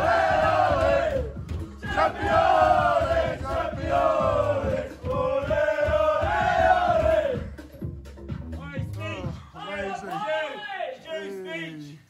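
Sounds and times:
men chanting in unison: 0.0 - 7.5.

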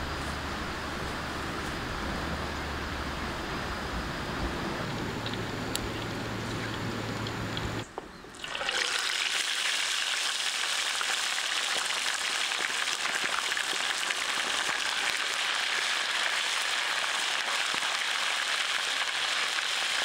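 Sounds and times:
fish deep-frying in oil: 8.3 - 20.0.

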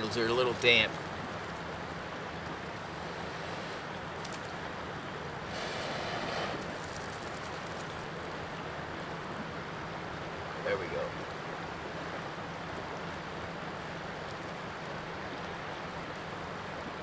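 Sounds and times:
person blowing on tinder: 5.5 - 6.8.

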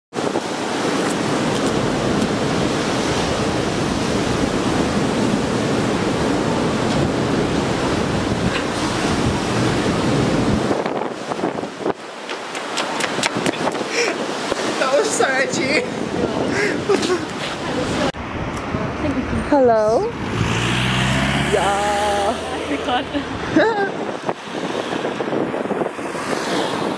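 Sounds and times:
wind blowing across microphone: 0.1 - 26.9
sea surf: 0.2 - 18.2, 20.0 - 26.9.

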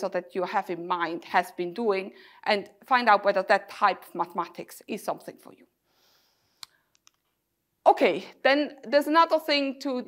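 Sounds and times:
woman speaking: 0.0 - 5.6, 7.9 - 10.0.

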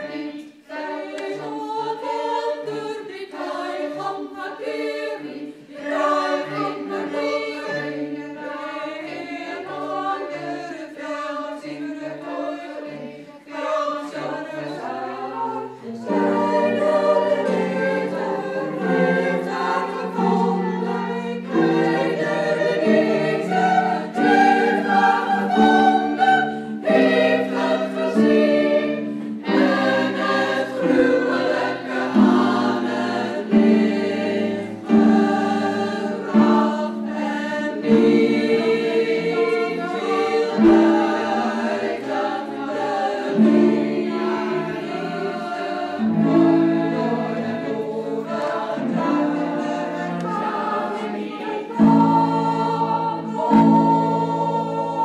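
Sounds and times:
alto soloist singing: 0.0 - 55.0
cellos: 0.0 - 55.0
women's choir singing: 0.0 - 55.0.

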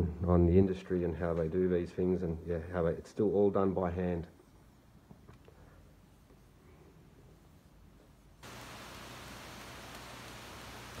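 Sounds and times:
steady hiss: 2.4 - 11.0.

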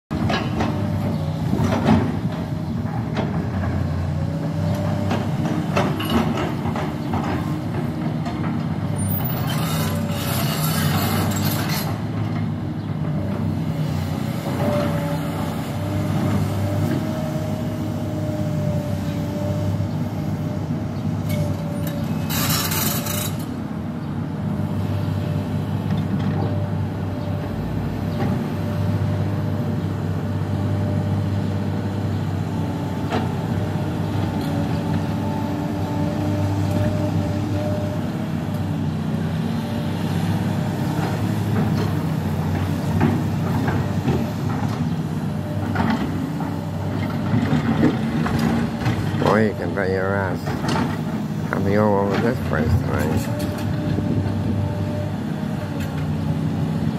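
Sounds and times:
excavator diesel engine running: 0.1 - 56.9.

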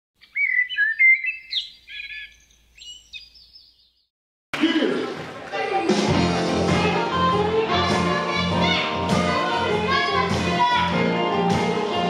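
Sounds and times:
bird chirping: 0.2 - 4.1.

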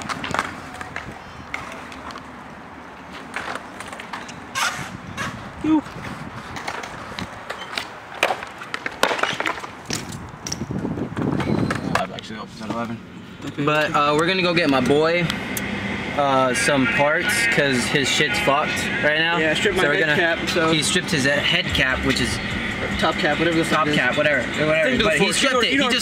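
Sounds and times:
bike rolling on concrete: 0.0 - 26.0.

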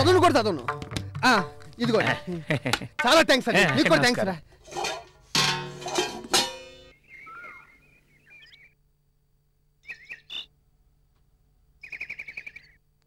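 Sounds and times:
small birds chirping: 6.9 - 8.8, 9.8 - 10.6, 11.8 - 12.8.

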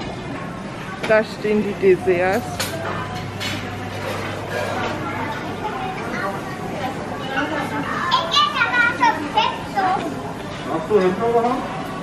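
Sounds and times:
children talking and calling: 0.0 - 10.7
murmur of voices: 0.0 - 12.0.

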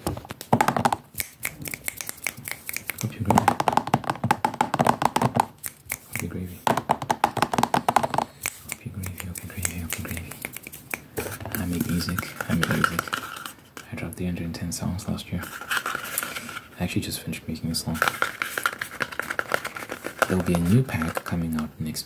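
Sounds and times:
quick clicks and taps: 0.3 - 11.6
rapid mouth sounds: 1.0 - 4.0, 5.4 - 6.6, 7.7 - 13.5.

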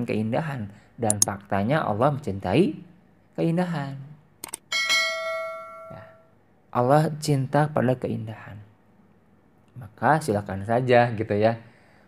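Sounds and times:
bell-like metallic ring: 4.7 - 6.3.

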